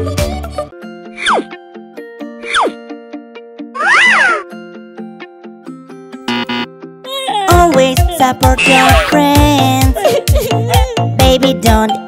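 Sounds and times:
children's music with plucked notes: 0:00.0 - 0:12.0
cartoon animal meow-like cry: 0:03.8 - 0:04.5, 0:08.5 - 0:09.2.

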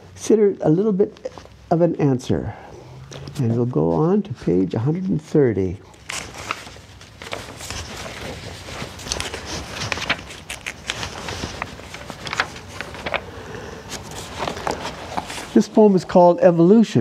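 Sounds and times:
book pages turning: 0:05.9 - 0:16.2.

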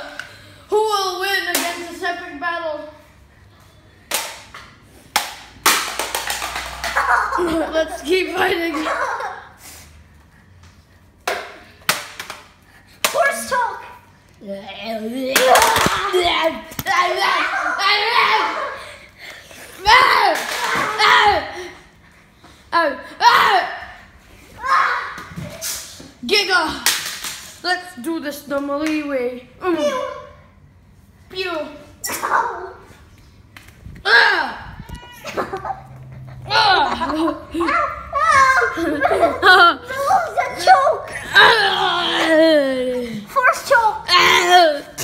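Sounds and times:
children calling and crying: 0:14.9 - 0:22.0, 0:34.0 - 0:45.0.

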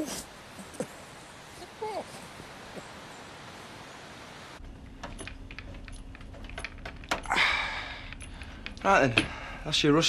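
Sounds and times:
outdoor background hiss: 0:00.0 - 0:10.0
low electrical hum: 0:03.4 - 0:10.0.

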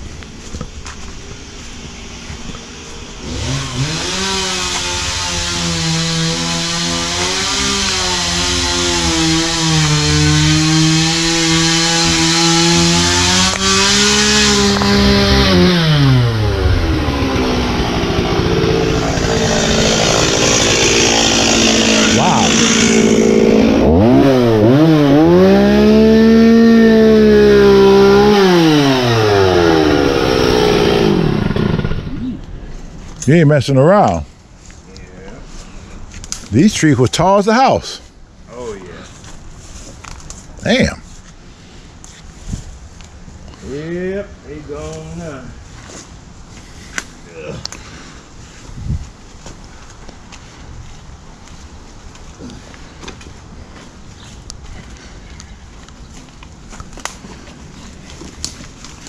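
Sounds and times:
chainsaw revving and idling: 0:03.1 - 0:32.4.

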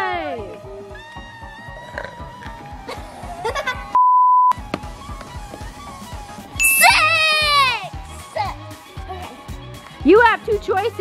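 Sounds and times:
background music with steady beat: 0:00.0 - 0:11.0
censor bleep: 0:04.0 - 0:04.6, 0:06.6 - 0:07.0.

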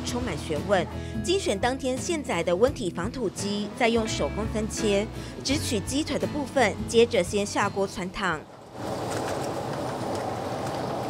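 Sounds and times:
water boiling in a pot: 0:08.7 - 0:11.0.

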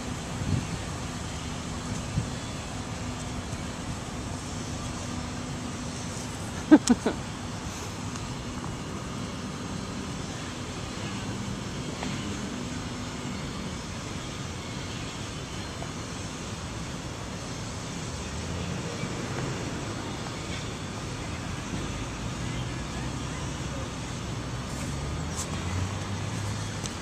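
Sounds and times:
traffic hum: 0:00.0 - 0:27.0
person laughing: 0:06.5 - 0:07.3.

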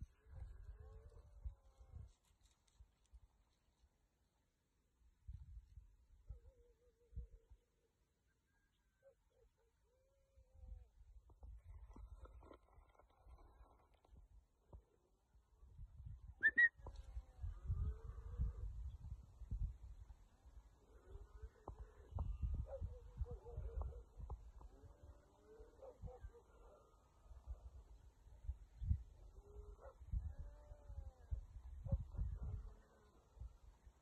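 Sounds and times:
rising whistle blasts: 0:16.4 - 0:16.7.

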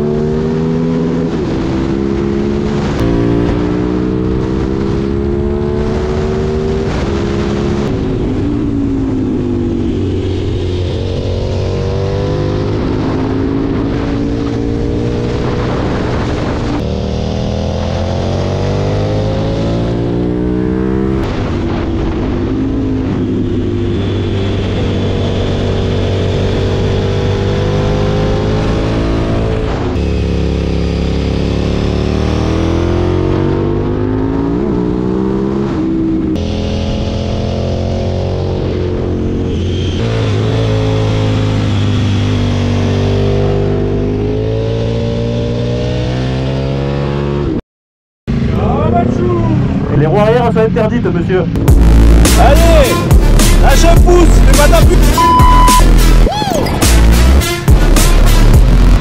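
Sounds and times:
motorcycle engine accelerating: 0:00.0 - 0:47.6, 0:48.3 - 0:59.0.

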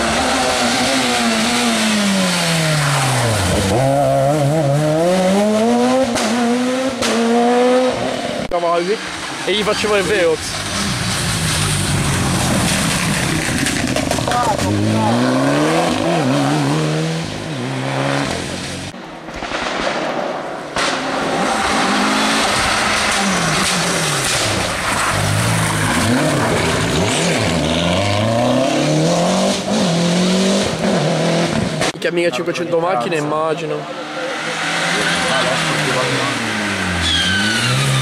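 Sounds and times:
rally cars passing at speed: 0:00.0 - 0:18.9, 0:20.8 - 0:32.0, 0:32.7 - 0:38.0.

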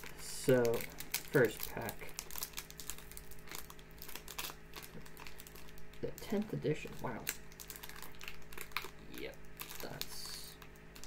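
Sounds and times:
wrapper crinkling: 0:00.0 - 0:11.0.

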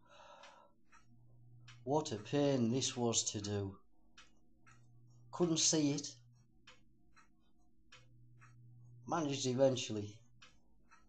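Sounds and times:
faint evenly spaced ticks: 0:00.0 - 0:11.0
low steady hum: 0:00.1 - 0:11.0.

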